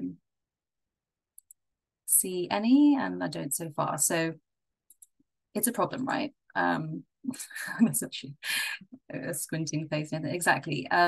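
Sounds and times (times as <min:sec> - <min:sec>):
computer mouse clicks: 0:01.3 - 0:01.6, 0:04.8 - 0:05.2.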